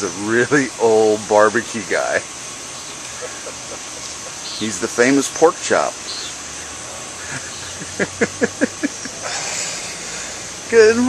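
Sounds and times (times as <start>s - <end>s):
steady low hum: 0.0s - 11.0s
man laughing: 3.0s - 5.1s, 7.1s - 10.4s.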